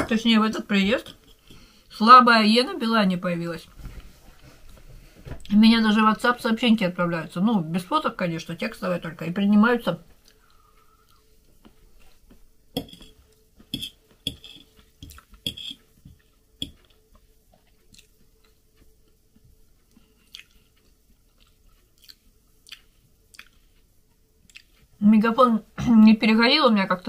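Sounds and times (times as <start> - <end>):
faint steady hum: 0.0 - 27.0
person chewing: 10.2 - 24.9.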